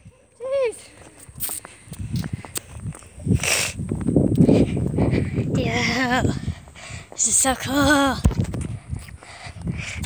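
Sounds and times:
footsteps on brick pavement: 0:00.0 - 0:10.0
microphone handling rumble: 0:01.3 - 0:06.8.

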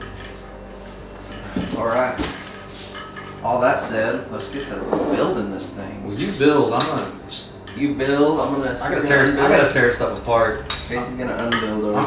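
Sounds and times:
man speaking: 0:01.7 - 0:02.3, 0:03.4 - 0:12.0.

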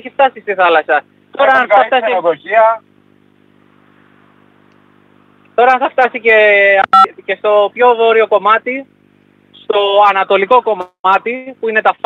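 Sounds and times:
man's voice over telephone: 0:00.0 - 0:02.8, 0:05.6 - 0:08.8
faint hum with hiss: 0:00.0 - 0:12.0.

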